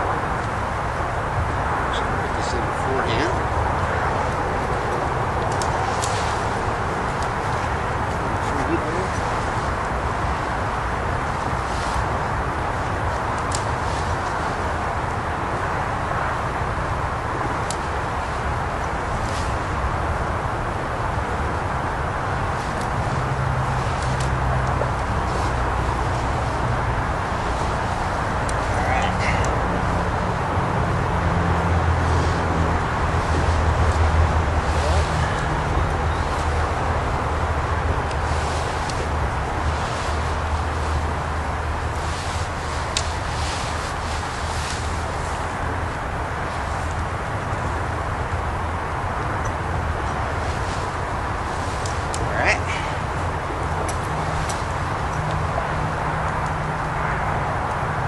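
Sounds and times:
outdoor background hiss: 0:00.0 - 0:58.0.

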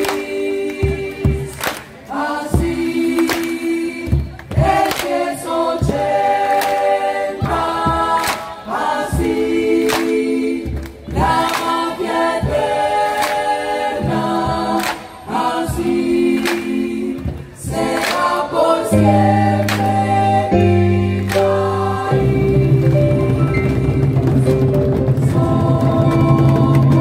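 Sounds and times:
keyboard: 0:00.0 - 0:27.0
choir singing sustained chords: 0:02.1 - 0:27.0.

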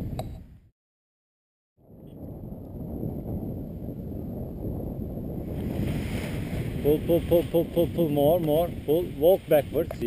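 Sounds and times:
wind blowing across microphone: 0:01.8 - 0:10.0.

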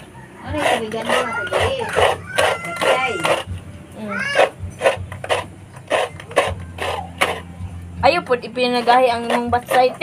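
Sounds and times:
coconut scraping on grater: 0:00.0 - 0:07.7, 0:08.3 - 0:10.0.

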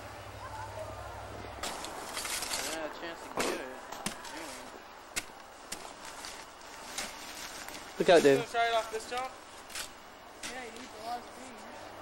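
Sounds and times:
outdoor hiss: 0:00.0 - 0:12.0.

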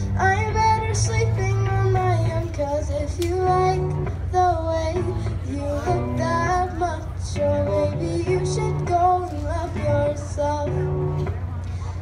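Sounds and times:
boy singing into microphone: 0:00.0 - 0:11.4
instrumental backing track: 0:00.0 - 0:12.0.

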